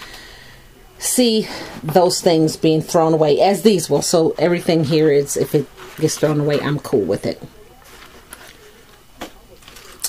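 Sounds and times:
paper baskets handled on tray: 3.9s - 10.0s.

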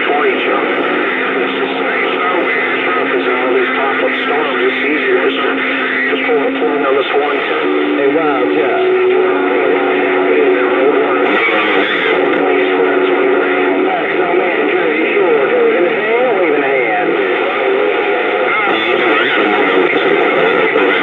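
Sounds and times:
garbled radio voices: 0.0s - 21.0s.

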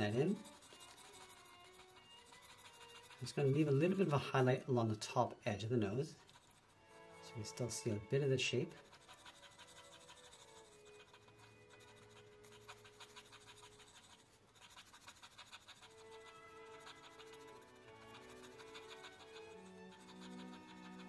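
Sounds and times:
pencil scratching on paper: 0.0s - 21.0s
soft background music: 0.0s - 21.0s.

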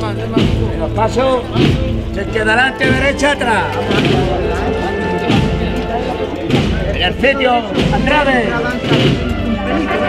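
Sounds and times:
people's voices: 0.0s - 10.0s
wind band playing: 0.0s - 10.0s.

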